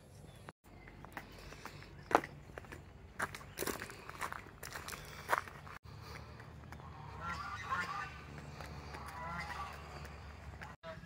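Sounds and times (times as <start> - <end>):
footsteps crunching on gravel: 0.9 - 10.8
ducks quacking: 5.9 - 11.0.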